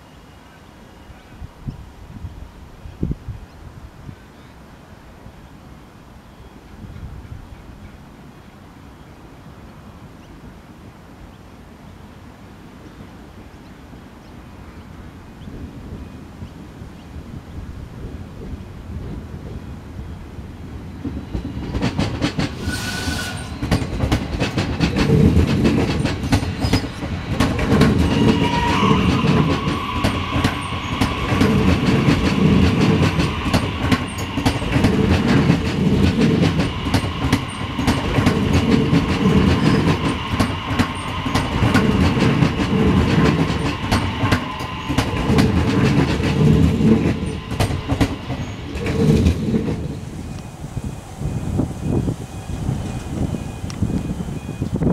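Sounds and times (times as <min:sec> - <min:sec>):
high whine of train: 0:00.0 - 0:54.9
train wheels clattering over rail joints: 0:21.0 - 0:50.4.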